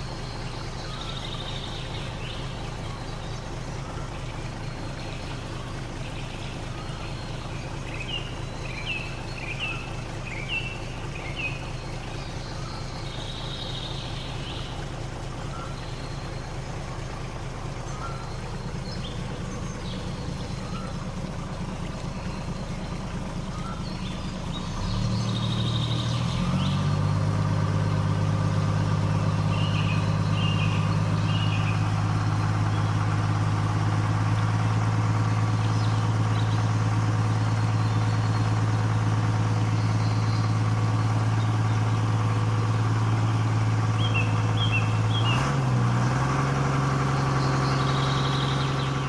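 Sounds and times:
low engine drone: 0.0s - 49.0s.

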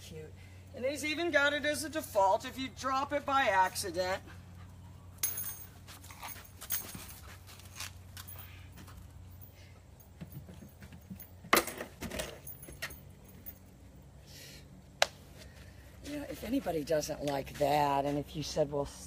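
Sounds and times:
collar tags jingling: 0.8s - 11.5s, 12.2s - 14.1s.

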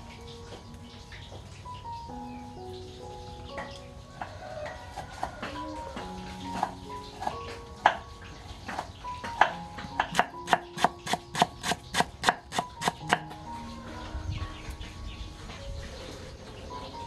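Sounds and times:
knife chopping on wooden board: 10.1s - 13.2s.

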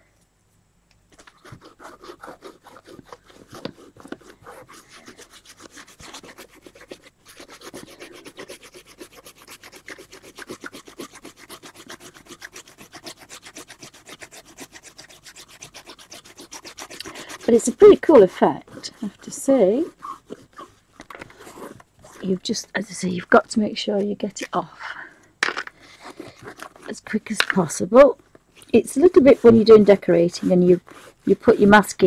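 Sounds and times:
rubbing on paper: 1.1s - 24.6s, 25.8s - 32.0s.

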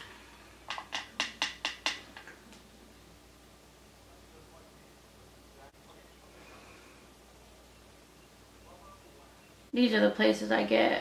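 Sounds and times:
brush tapping on powder compact: 0.7s - 2.3s.

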